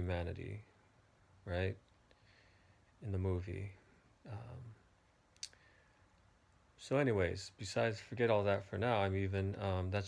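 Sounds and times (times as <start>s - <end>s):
man talking: 0.0s - 0.8s, 1.4s - 1.9s, 3.0s - 4.8s, 6.8s - 10.0s.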